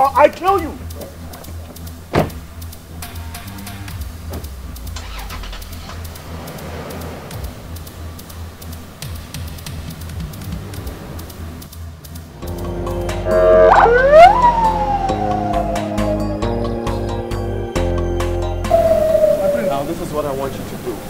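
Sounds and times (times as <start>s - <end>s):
car engine driving off: 0.0s - 17.9s, 18.6s - 21.0s
background music: 0.0s - 21.0s
car door slamming: 1.6s - 2.6s, 4.2s - 4.6s.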